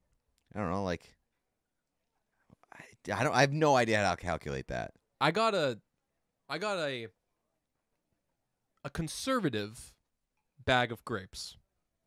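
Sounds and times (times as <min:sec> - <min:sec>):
person talking: 0:00.5 - 0:01.0, 0:02.8 - 0:05.8, 0:06.5 - 0:07.1, 0:08.9 - 0:09.9.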